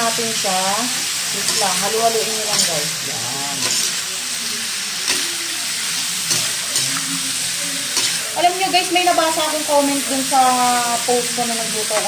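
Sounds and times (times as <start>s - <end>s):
meat sizzling in a pan: 0.0s - 12.0s
spatula scraping a pan: 1.3s - 4.0s.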